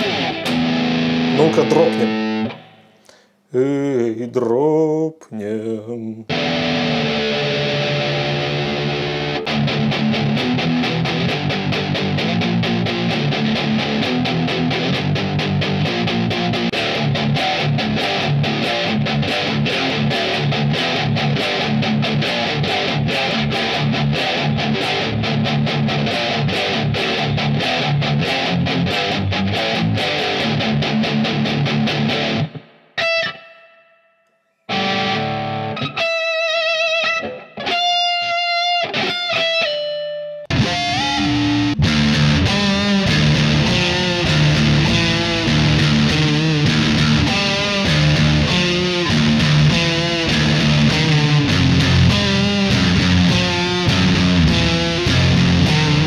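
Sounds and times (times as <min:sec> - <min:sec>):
ringing guitar notes with vibrato: 0:00.0 - 0:03.2, 0:06.3 - 0:56.0
distorted electric guitar riff: 0:00.0 - 0:03.8, 0:06.3 - 0:56.0.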